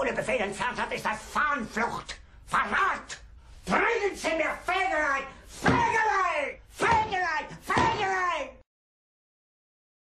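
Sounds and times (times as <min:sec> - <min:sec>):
man shouting angrily: 0:02.5 - 0:08.6.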